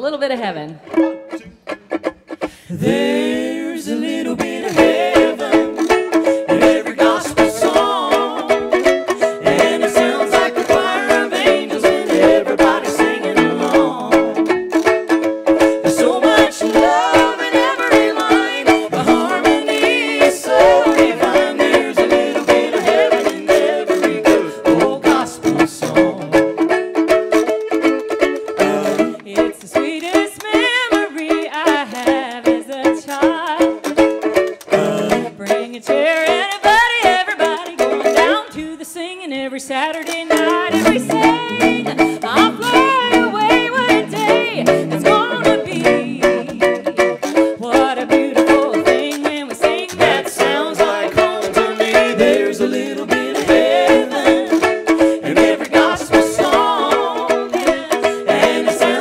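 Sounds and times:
banjo picking: 0:00.0 - 0:59.0
held chords: 0:00.9 - 0:38.4, 0:39.9 - 0:59.0
washboard rhythm: 0:01.4 - 0:30.8, 0:33.8 - 0:38.4, 0:40.1 - 0:59.0.

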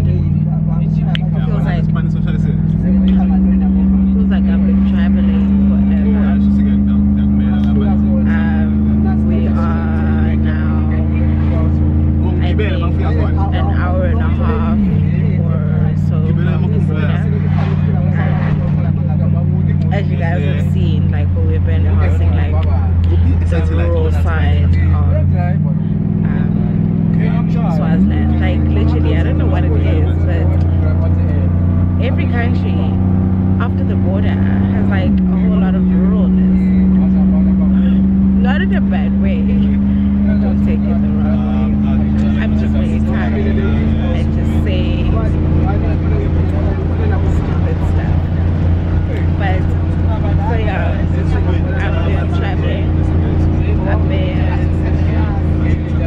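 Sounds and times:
bus engine droning: 0:00.0 - 0:56.0
person talking: 0:01.2 - 0:02.1, 0:04.1 - 0:06.5, 0:07.6 - 0:11.1, 0:12.2 - 0:19.0, 0:19.8 - 0:30.6, 0:32.0 - 0:33.0, 0:33.6 - 0:36.7, 0:37.4 - 0:45.3, 0:46.5 - 0:48.4, 0:49.1 - 0:52.9, 0:53.7 - 0:55.4.

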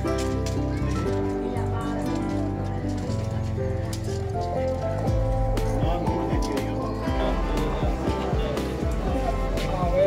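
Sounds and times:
held melodic notes: 0:00.0 - 0:10.0
steady low bass: 0:05.1 - 0:10.0.

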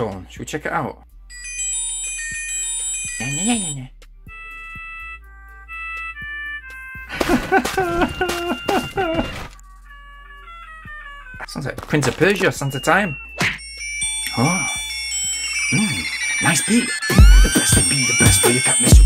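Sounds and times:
stepped beeping notes: 0:01.3 - 0:19.0
tinny electronic phone melodies: 0:01.3 - 0:19.0.

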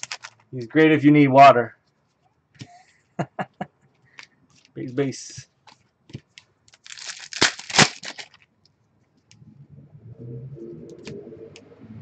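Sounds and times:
wrapper crinkling: 0:00.0 - 0:00.4, 0:05.6 - 0:08.5
wrapper ripping: 0:00.0 - 0:00.4, 0:06.7 - 0:08.5.

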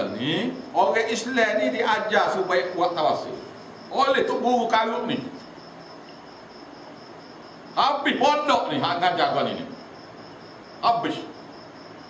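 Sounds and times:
cricket chirping: 0:00.0 - 0:12.0
low room hiss: 0:00.0 - 0:12.0.

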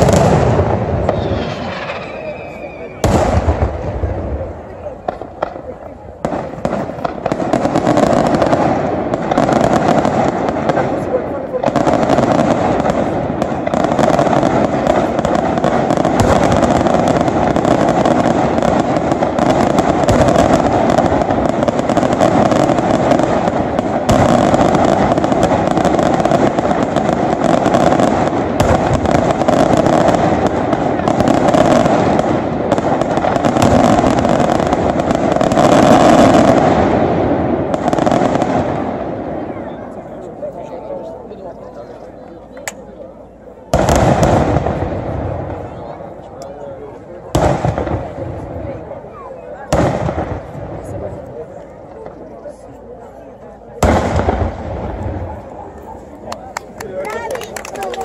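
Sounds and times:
fireworks crackling and banging: 0:00.0 - 0:58.0.

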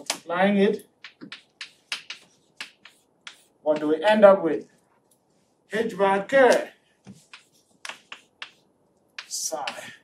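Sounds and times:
chalk tapping on chalkboard: 0:00.0 - 0:04.0, 0:06.5 - 0:10.0.

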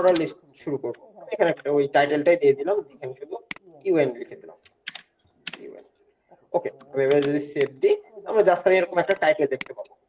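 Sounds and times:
keyboard keystrokes clicking: 0:04.6 - 0:05.7.

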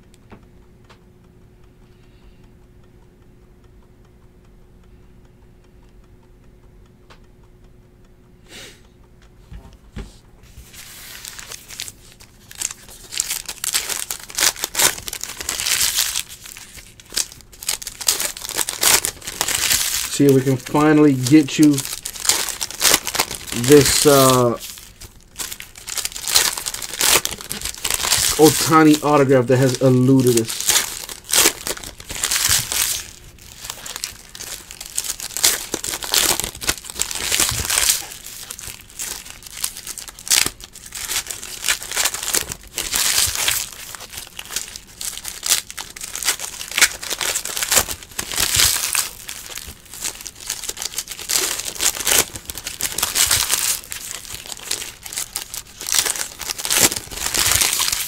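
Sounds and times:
card pack wrappers crinkling: 0:10.6 - 0:58.0.

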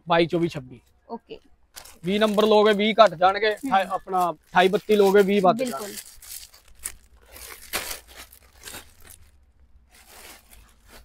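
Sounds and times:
plastic bags crinkling: 0:01.7 - 0:11.0.

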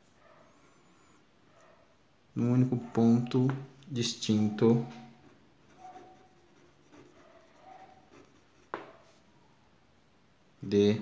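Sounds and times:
ballpoint pen scratching on paper: 0:04.7 - 0:09.1.

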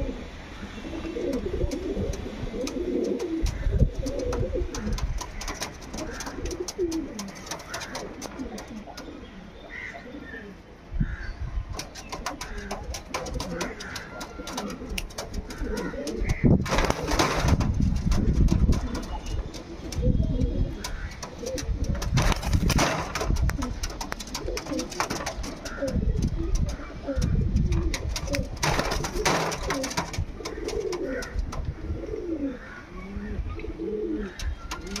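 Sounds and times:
pigeons cooing: 0:00.0 - 0:35.0.

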